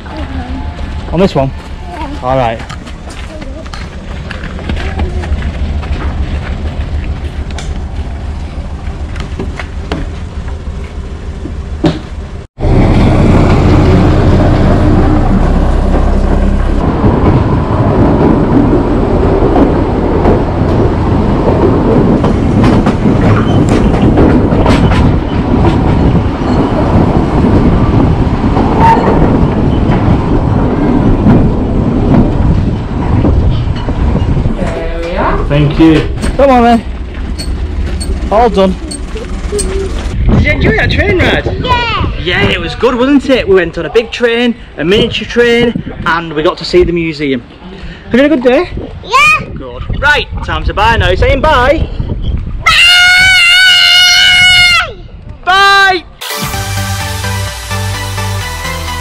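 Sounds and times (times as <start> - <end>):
train wheels clattering on rails: 0.0 - 12.5, 13.1 - 40.2.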